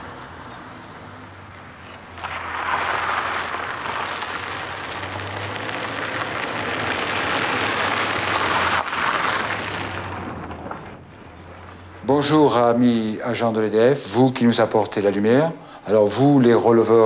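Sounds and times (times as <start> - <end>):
van driving on gravel: 0.0 - 17.0.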